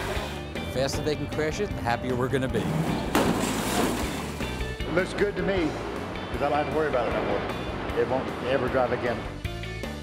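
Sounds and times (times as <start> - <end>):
background music: 0.0 - 10.0
loud car crash: 2.8 - 4.7.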